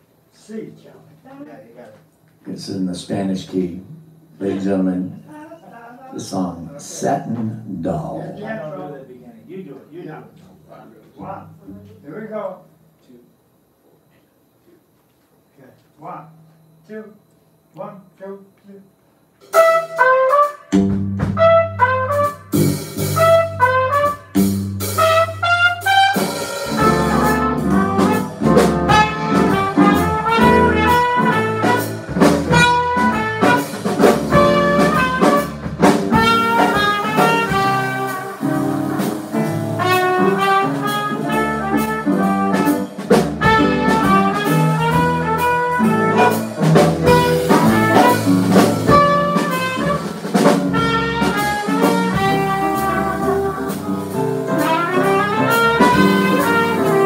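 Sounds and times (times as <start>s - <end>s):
drum kit: 19.4s - 57.0s
trumpet: 19.4s - 57.0s
piano: 19.5s - 57.0s
electric bass: 20.8s - 57.0s.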